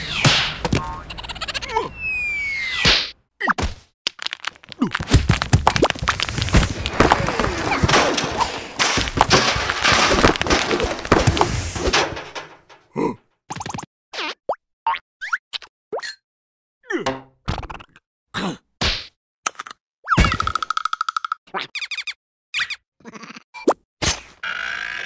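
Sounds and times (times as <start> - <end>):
squeaky cartoon sounds: 0.8 - 2.9, 21.2 - 23.8
ice chunks clattering onto pile: 4.2 - 12.8.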